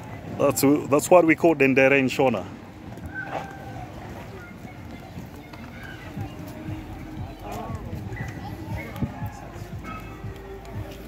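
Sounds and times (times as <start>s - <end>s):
footsteps soft thuds: 2.8s - 11.0s
people talking: 3.4s - 11.0s.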